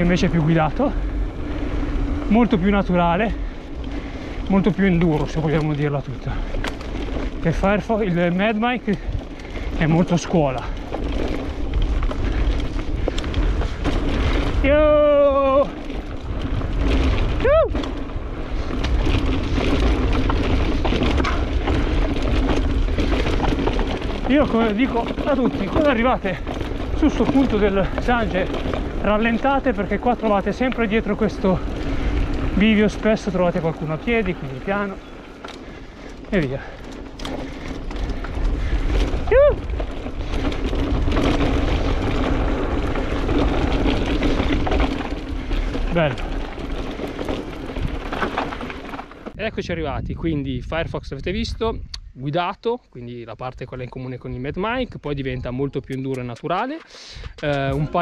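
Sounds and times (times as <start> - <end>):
tyres rolling over dirt: 0.0 - 51.6, 53.1 - 58.0
bike chain and frame rattling: 0.0 - 51.9, 53.5 - 58.0
wind rumbling on microphone: 0.0 - 58.0
person whooping: 14.7 - 15.8, 17.4 - 17.8, 39.2 - 39.7.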